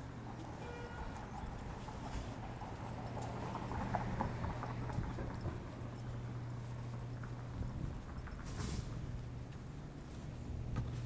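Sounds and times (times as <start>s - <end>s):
city street traffic hum: 0.0s - 11.0s
footsteps on concrete: 0.3s - 11.0s.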